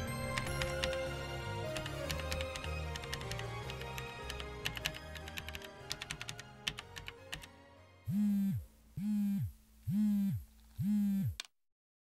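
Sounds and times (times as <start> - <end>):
mobile phone buzzing: 8.1 - 11.4.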